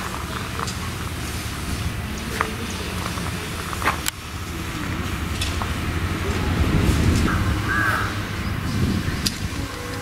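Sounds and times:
low outdoor rumble: 0.0s - 10.0s
crow cawing: 7.2s - 8.3s.

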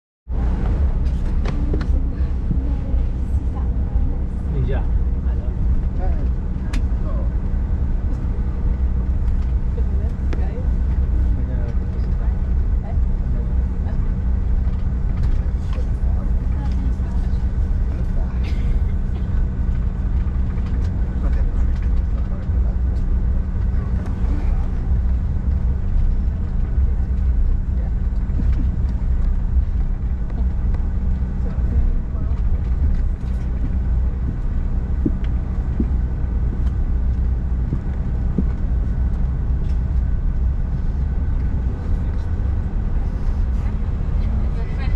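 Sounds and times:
jet engines humming and whining: 0.3s - 44.9s
low cabin rumble: 0.3s - 44.9s.

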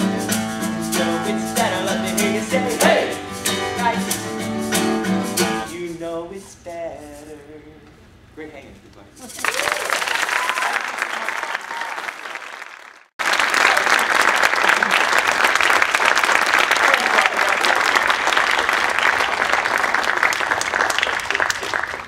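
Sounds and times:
audience applauding: 9.4s - 22.0s.

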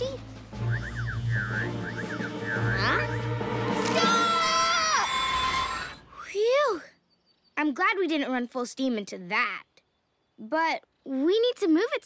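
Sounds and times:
cartoon voices screaming: 3.8s - 6.0s.

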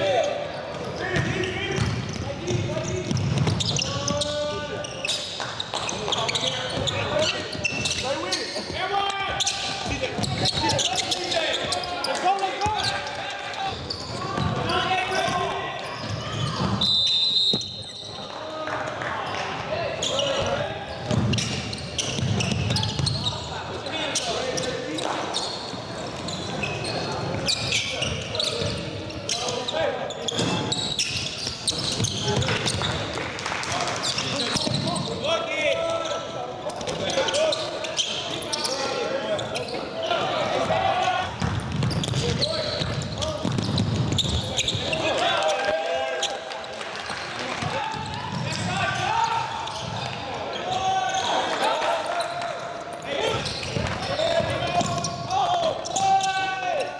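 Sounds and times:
people talking and calling out: 0.0s - 56.9s
basketball bouncing on court: 0.7s - 3.9s, 20.4s - 23.3s, 40.6s - 44.9s.

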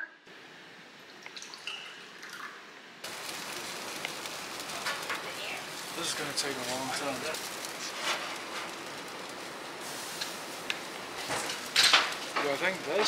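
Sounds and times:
meat sizzling on barbecue grill: 3.0s - 13.0s.

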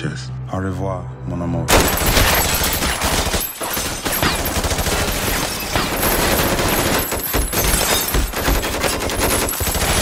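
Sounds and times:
rapid gunfire: 1.7s - 10.0s.

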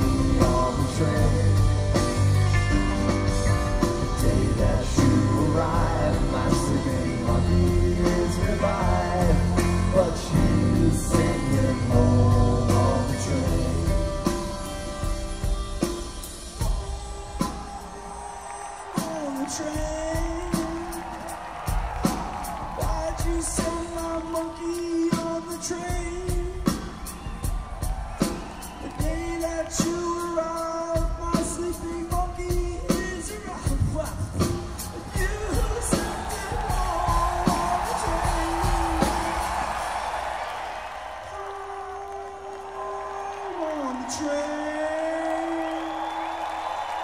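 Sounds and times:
live rock band playing: 0.0s - 40.7s
drum beat with cymbals: 0.0s - 40.8s.

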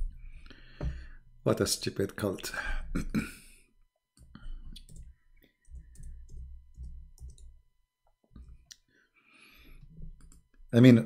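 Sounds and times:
computer keyboard keystrokes: 5.7s - 7.5s.

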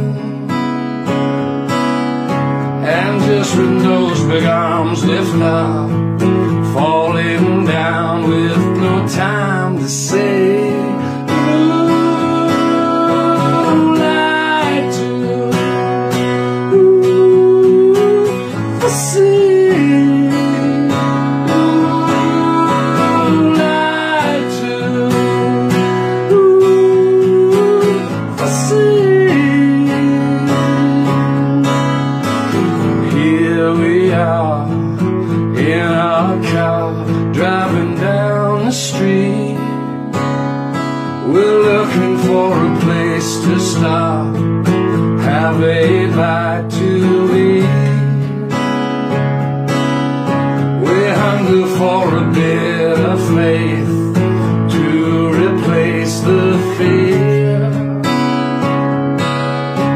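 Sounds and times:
man singing: 0.0s - 0.8s, 2.6s - 40.2s, 41.1s - 48.8s, 50.3s - 58.4s
strummed acoustic guitar: 0.0s - 59.9s.

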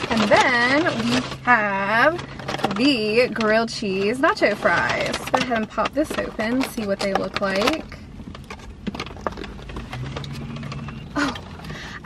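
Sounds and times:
paper wrapper crackling: 0.0s - 12.0s.

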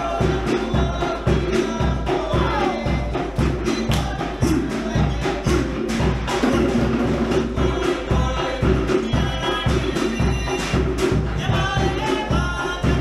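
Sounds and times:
live band music with singing: 0.0s - 13.0s
sharp percussion strikes: 0.0s - 13.0s.

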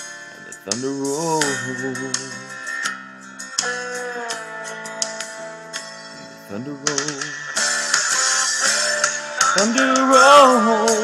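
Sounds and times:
country guitar music: 0.0s - 11.0s.

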